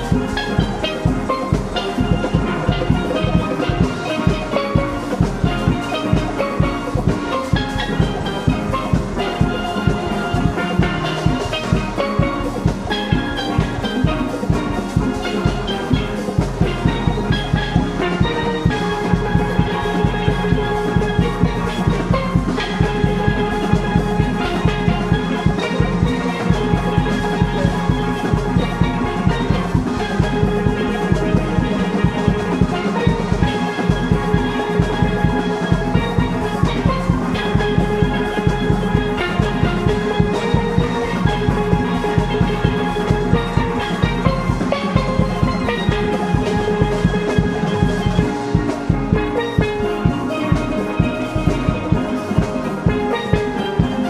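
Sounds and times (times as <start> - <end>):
drum kit with cymbals: 0.0 - 54.0
hand percussion: 0.0 - 54.0
steelpans playing melody: 0.0 - 54.0.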